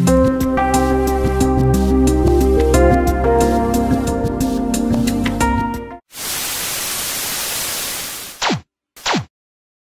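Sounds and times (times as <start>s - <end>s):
music: 0.0s - 6.0s
tv static hiss: 6.1s - 8.4s.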